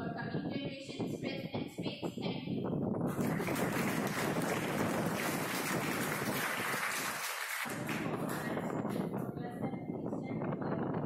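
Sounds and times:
audience applauding: 0:03.1 - 0:08.8.

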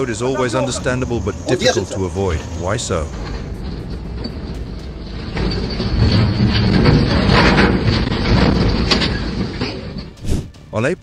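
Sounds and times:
logs rolling and knocking: 0:02.6 - 0:10.6.

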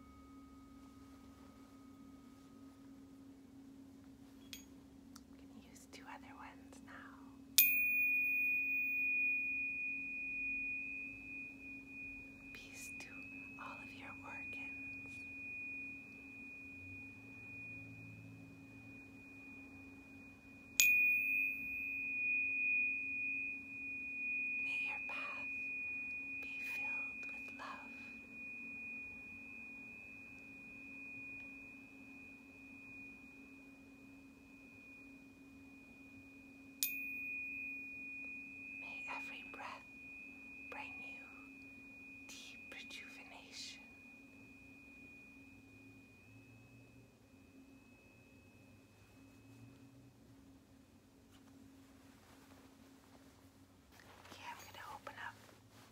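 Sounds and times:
low steady hum: 0:00.0 - 0:55.9
tuning fork ringing: 0:00.0 - 0:55.9.

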